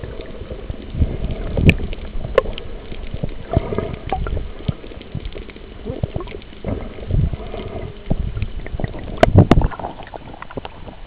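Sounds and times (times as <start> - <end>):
muffled water sloshing underwater: 0.0 - 11.0.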